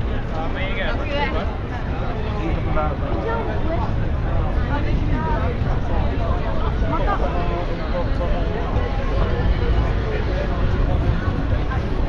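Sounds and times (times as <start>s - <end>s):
low rumble of road traffic: 0.0s - 12.0s
passers-by talking: 0.0s - 12.0s.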